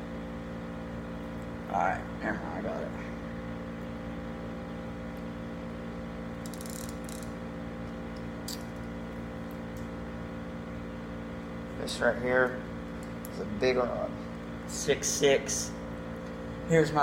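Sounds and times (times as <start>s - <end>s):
humidifier humming whir: 0.0s - 17.0s.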